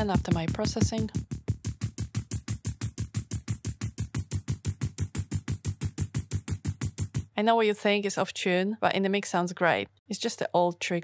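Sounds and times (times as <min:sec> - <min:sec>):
synthesizer fast repeating notes: 0:00.0 - 0:07.4.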